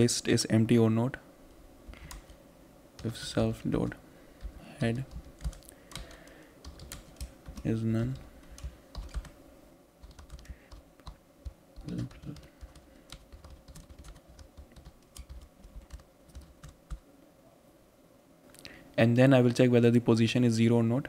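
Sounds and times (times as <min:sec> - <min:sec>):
typing on computer keyboard: 0:04.4 - 0:09.3, 0:10.0 - 0:17.0.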